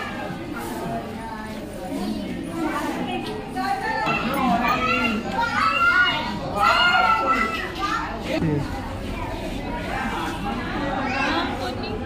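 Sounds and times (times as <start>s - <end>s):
children chattering and calling: 0.0s - 12.0s
people talking: 0.0s - 12.0s.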